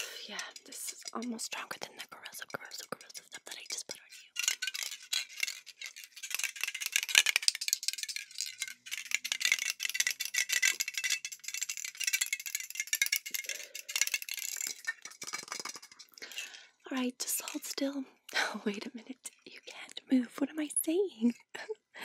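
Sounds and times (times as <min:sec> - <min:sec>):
aerosol spray can rattling: 0:00.0 - 0:16.4.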